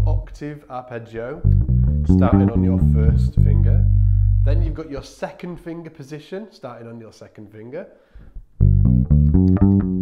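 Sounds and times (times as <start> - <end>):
electric bass guitar plucked notes: 1.4 - 4.8, 8.4 - 10.0.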